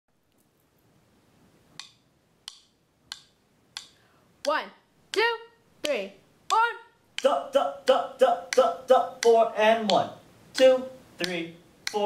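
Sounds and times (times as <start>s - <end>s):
metronome clicks: 1.8s - 5.3s, 8.4s - 10.0s, 10.6s - 12.0s.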